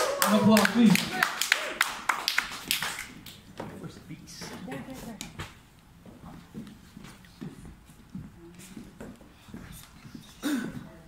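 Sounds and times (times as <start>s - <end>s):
audience clapping: 0.0s - 3.5s.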